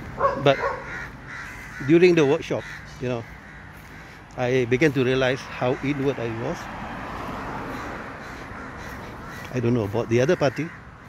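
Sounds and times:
crows cawing: 0:00.0 - 0:11.0.

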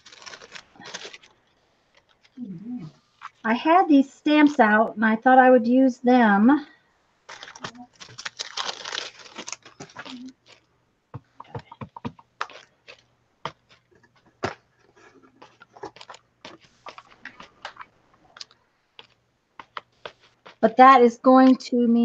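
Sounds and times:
paper rustling: 0:00.0 - 0:02.4, 0:07.3 - 0:10.7, 0:12.1 - 0:20.6.

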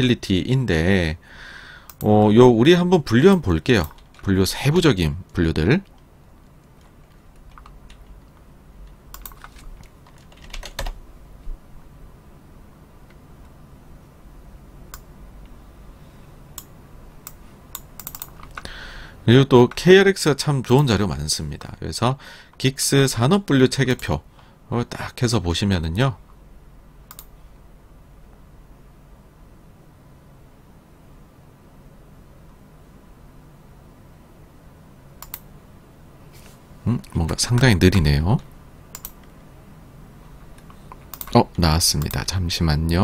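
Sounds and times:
computer keyboard and mouse clicks: 0:03.8 - 0:04.3, 0:05.8 - 0:11.0, 0:16.6 - 0:18.7, 0:27.1 - 0:27.3, 0:35.2 - 0:35.5, 0:38.9 - 0:39.4, 0:40.6 - 0:41.4
keyboard key clicks: 0:17.3 - 0:18.6
faint rustle: 0:36.2 - 0:36.8.

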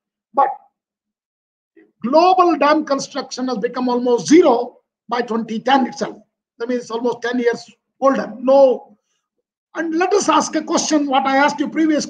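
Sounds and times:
man speaking: 0:02.0 - 0:08.9, 0:09.8 - 0:12.0.

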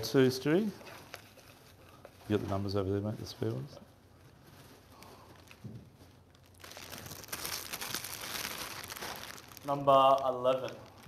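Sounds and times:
plastic bag crinkling: 0:00.8 - 0:11.0.

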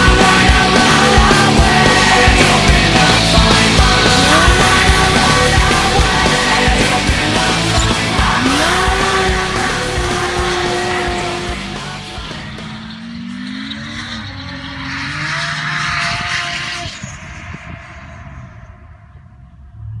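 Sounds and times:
car engine at high revs: 0:00.0 - 0:20.0
tyre noise hissing: 0:01.8 - 0:11.8.

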